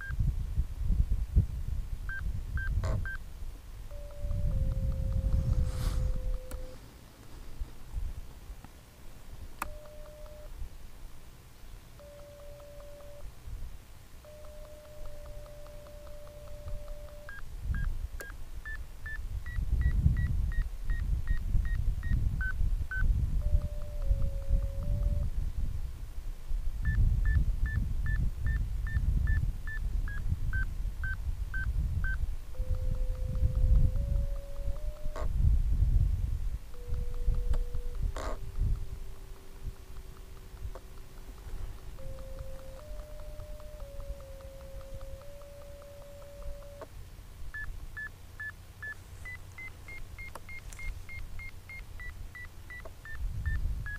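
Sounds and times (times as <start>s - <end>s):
wind buffeting microphone: 0.0s - 6.8s, 19.2s - 45.4s, 53.2s - 53.9s
steady low electronic tone: 2.1s - 6.9s, 9.6s - 10.6s, 12.0s - 13.3s, 14.2s - 25.4s, 26.8s - 46.9s
short high beeps: 3.9s - 6.8s, 9.6s - 10.5s, 12.0s - 13.2s, 14.2s - 17.9s, 18.7s - 25.3s, 31.0s - 35.3s, 42.0s - 46.9s.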